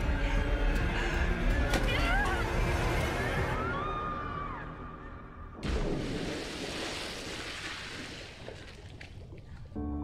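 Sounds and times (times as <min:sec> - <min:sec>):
body splashing into pool: 0:05.6 - 0:09.6.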